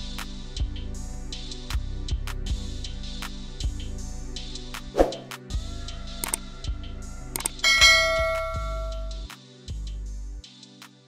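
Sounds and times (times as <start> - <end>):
background music with beat: 0.0 - 11.0
metallic bell ding: 7.6 - 9.2.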